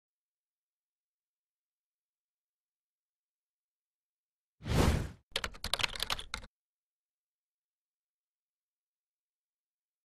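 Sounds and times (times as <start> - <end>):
short whoosh: 4.6 - 5.2
rapid sharp clicks: 5.4 - 6.5.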